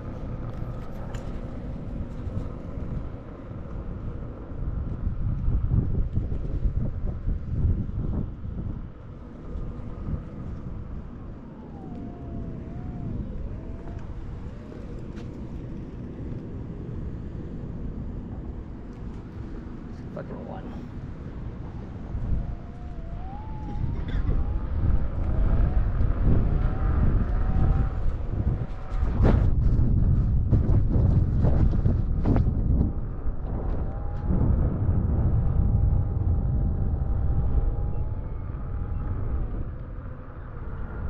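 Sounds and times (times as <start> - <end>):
high electric motor whine: 0.0 - 41.0
wind rumbling on microphone: 0.0 - 41.0.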